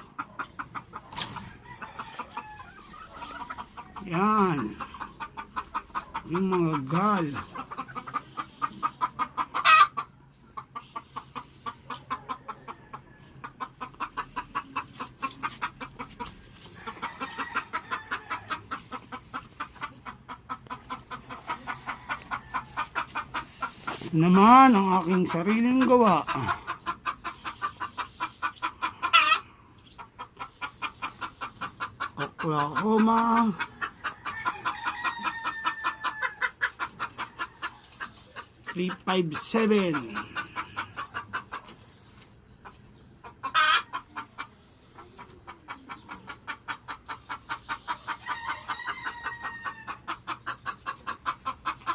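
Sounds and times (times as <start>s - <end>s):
chicken squawk: 0.0s - 12.9s, 13.7s - 41.8s, 43.2s - 51.9s
chickens clucking: 0.0s - 51.9s
drawn-out chicken call: 0.0s - 51.9s.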